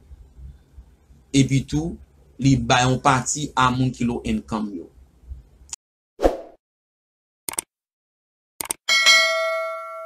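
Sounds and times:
notification bell ding: 8.9s - 10.0s.

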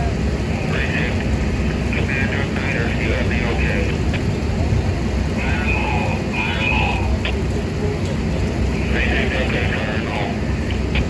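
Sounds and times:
diesel engine rumbling: 0.0s - 11.0s
indistinct voices: 0.0s - 11.0s.

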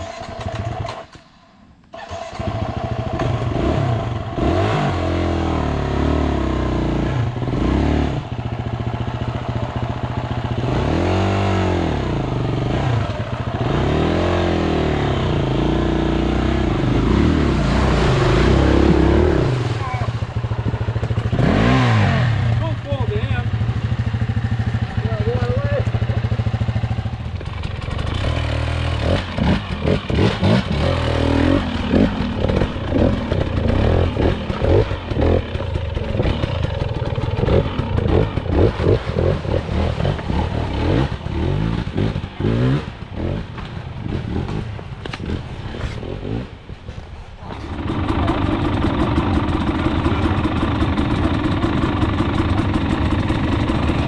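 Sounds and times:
dirt bike engine revving: 2.0s - 46.7s, 47.6s - 54.0s.

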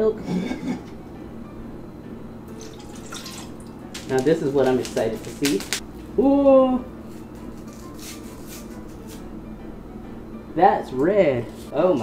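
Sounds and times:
powder packet crinkling and tearing: 4.0s - 5.8s.

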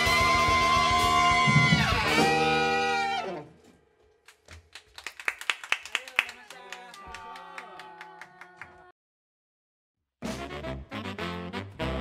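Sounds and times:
saxophone music with bass: 0.0s - 3.6s, 10.2s - 12.0s
hand clapping: 4.3s - 8.9s.

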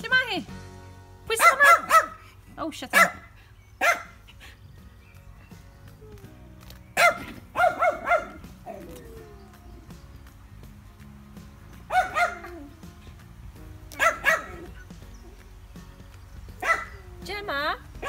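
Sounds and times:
dog barking: 1.4s - 2.2s, 2.9s - 4.2s, 7.0s - 8.8s, 11.9s - 12.7s, 13.9s - 14.8s, 16.6s - 17.0s.

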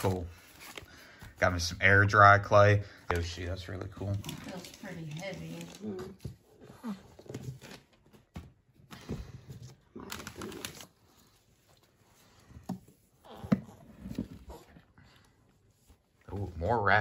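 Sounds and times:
wrapping paper rustling: 4.0s - 6.1s, 10.0s - 12.0s.

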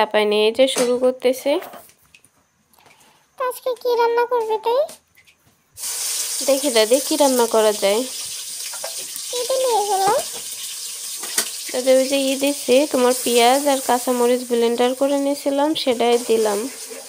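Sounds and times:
paste sizzling in hot oil: 5.8s - 17.0s.

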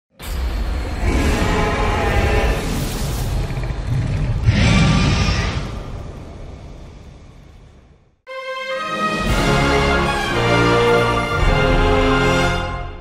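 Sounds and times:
fiery whoosh with roar: 0.6s - 8.0s.

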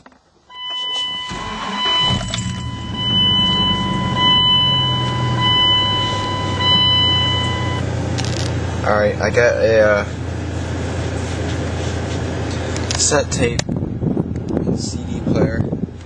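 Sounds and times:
high dashboard warning chime: 0.5s - 7.9s
engine starting and idling: 1.0s - 8.6s.

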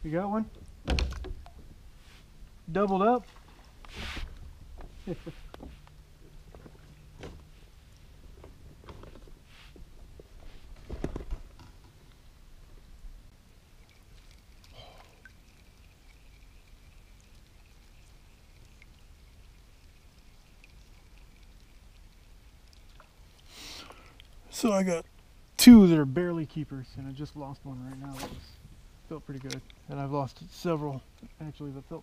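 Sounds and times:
low thump: 0.8s - 1.8s.

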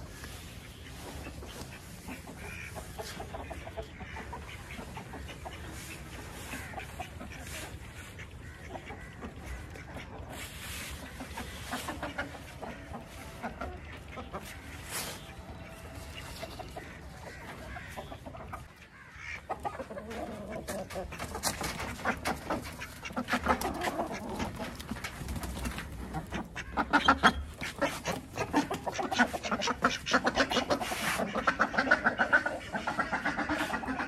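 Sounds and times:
chickens clucking: 0.0s - 34.0s.

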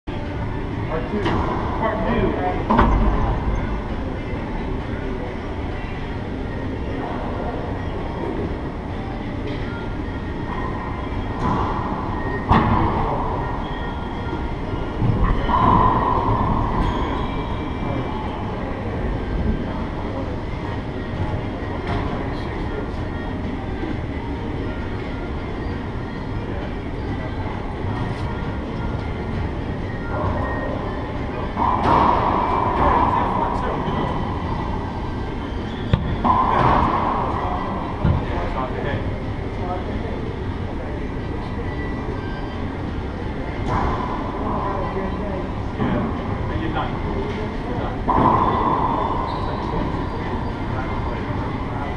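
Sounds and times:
steady rumbling noise: 0.0s - 51.9s
faint voices: 0.1s - 51.9s
racquetball hits: 35.9s - 38.3s.

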